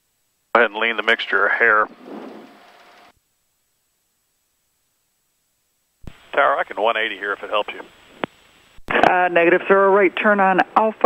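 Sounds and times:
rushing cockpit noise: 0.6s - 3.1s.

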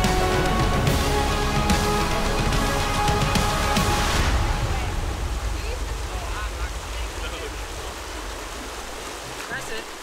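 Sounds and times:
stream rushing over rocks: 0.0s - 10.0s.

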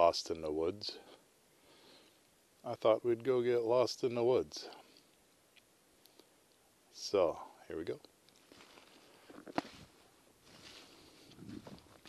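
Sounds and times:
footsteps crunching through leaves: 8.4s - 12.0s.

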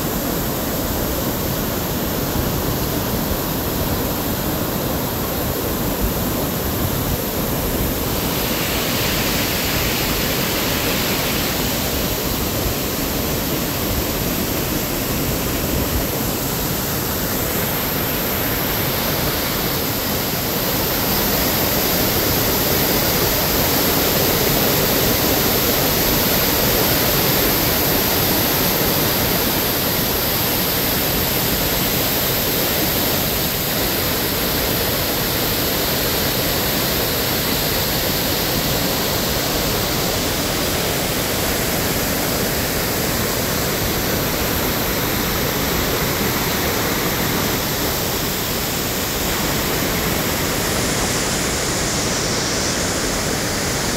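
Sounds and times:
waterfall rushing: 0.0s - 53.9s.

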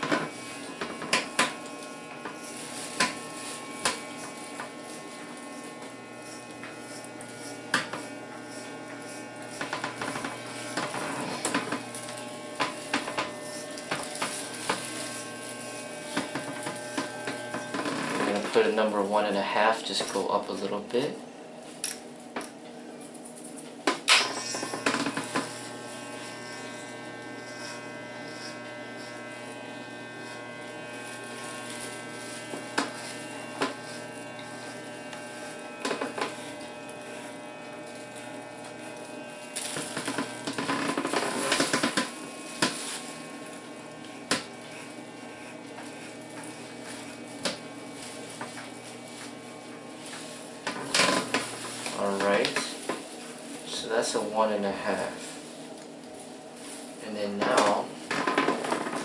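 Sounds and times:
electric hair clipper buzzing: 0.0s - 59.0s.

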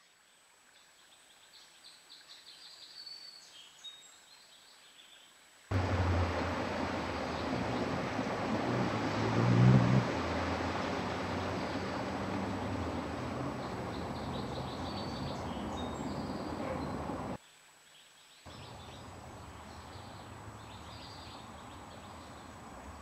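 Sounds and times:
outdoor background hiss: 0.0s - 23.0s
hummingbird wings humming: 5.7s - 17.4s, 18.5s - 23.0s
low hum: 5.7s - 17.4s.

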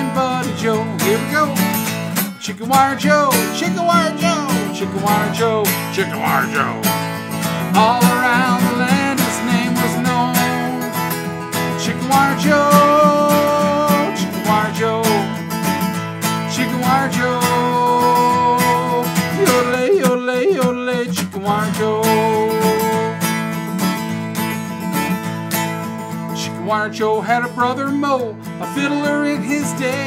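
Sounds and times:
man singing and yodeling: 0.0s - 1.8s, 2.4s - 7.0s, 7.7s - 15.4s, 16.5s - 23.2s, 26.4s - 30.0s
strummed acoustic guitar: 0.0s - 30.0s.

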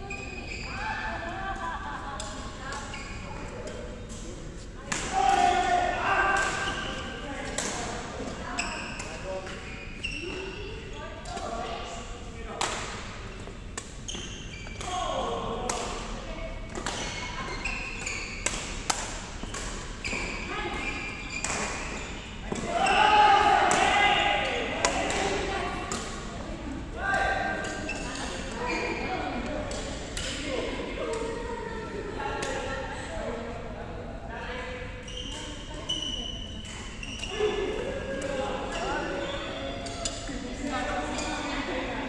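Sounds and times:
players' voices and calls: 0.0s - 42.0s
rackets hitting shuttlecock: 16.7s - 20.4s, 23.6s - 24.0s.

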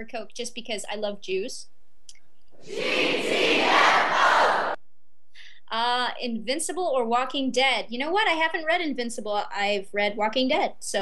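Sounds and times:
crowd shouting and cheering: 2.6s - 4.8s.

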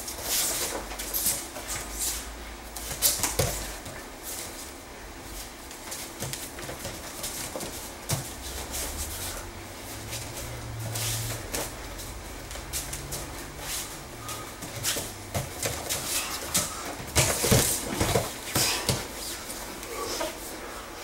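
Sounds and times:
bare feet shuffling and slapping: 0.0s - 20.6s
heavy breathing and grunts: 13.8s - 21.0s
bodies thudding on mats: 14.2s - 19.1s.

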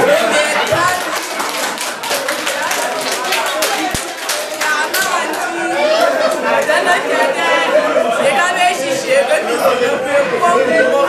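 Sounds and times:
children talking and calling out: 2.8s - 11.0s.

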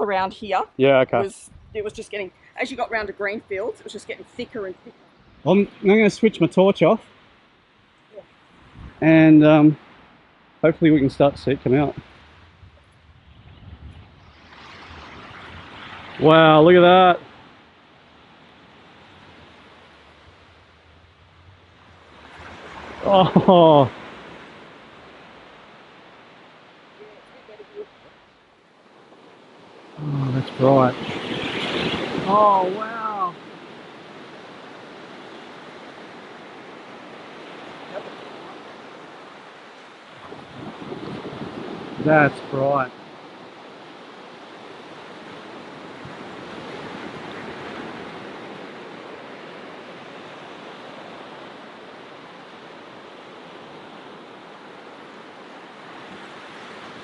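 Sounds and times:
small waves breaking on beach: 0.0s - 57.0s.

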